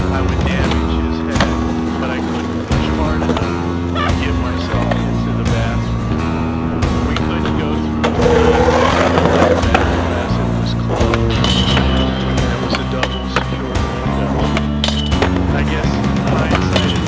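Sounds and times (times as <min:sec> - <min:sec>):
skateboard wheels rolling on concrete: 0:00.0 - 0:05.8, 0:07.0 - 0:17.0
music with held notes: 0:00.0 - 0:17.0.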